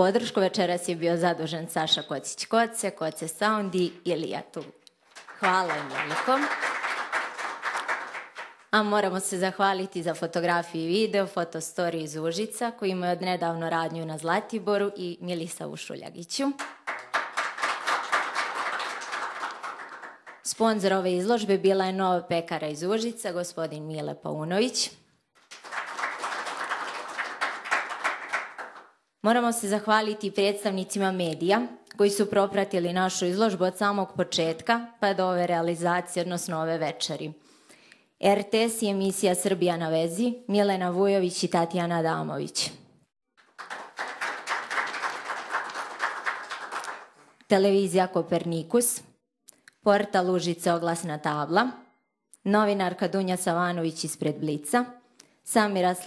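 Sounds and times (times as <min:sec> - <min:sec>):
audience applauding: 0:05.2 - 0:08.6, 0:16.6 - 0:20.5, 0:25.4 - 0:28.9, 0:43.4 - 0:47.2.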